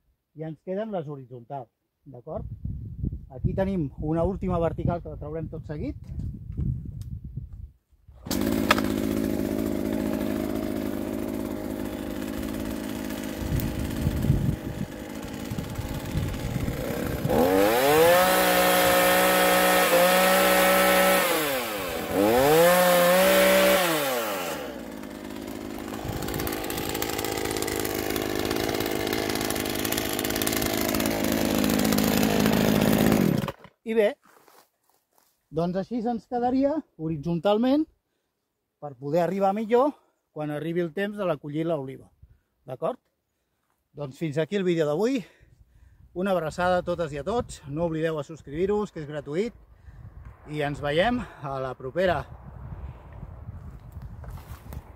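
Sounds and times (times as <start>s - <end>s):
chainsaw engine revving: 8.2s - 33.7s.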